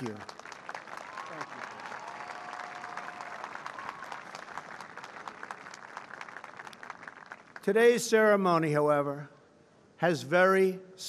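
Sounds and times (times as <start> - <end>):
crowd applauding: 0.0 - 7.7.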